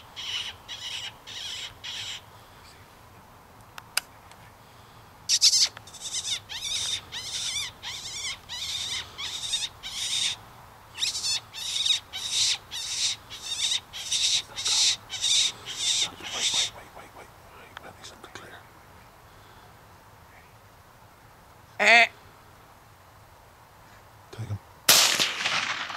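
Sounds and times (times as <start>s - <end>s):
fox call squealing: 11.0s - 17.2s.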